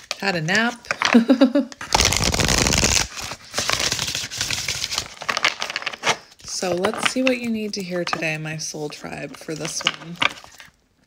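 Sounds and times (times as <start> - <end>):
cards being shuffled: 0.0 - 8.3
person laughing: 1.1 - 1.8.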